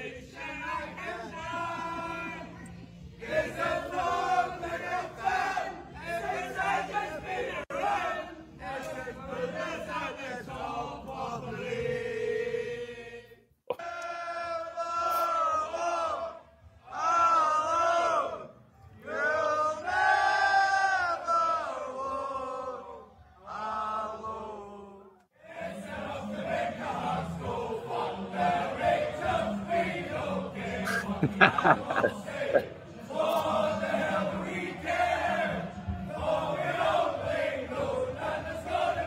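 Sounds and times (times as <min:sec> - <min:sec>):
crowd of men singing and shouting: 0:00.0 - 0:39.0.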